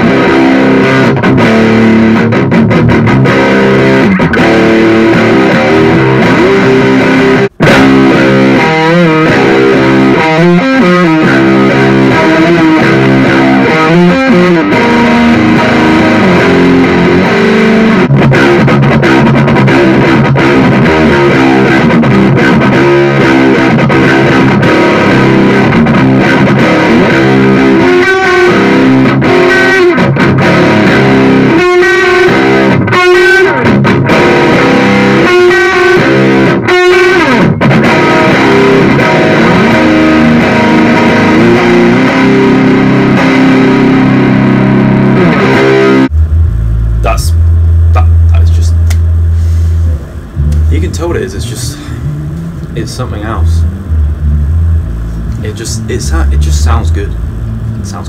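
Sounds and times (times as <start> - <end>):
electric guitar chords and lines: 0.0 - 58.0.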